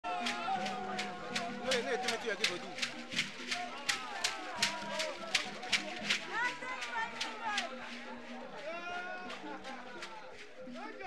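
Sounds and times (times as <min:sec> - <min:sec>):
group singing: 0:00.0 - 0:11.0
steady percussion beat: 0:00.1 - 0:10.2.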